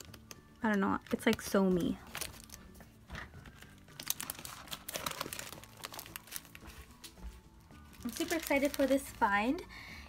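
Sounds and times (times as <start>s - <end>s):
plastic packaging crinkling: 0.0s - 9.6s.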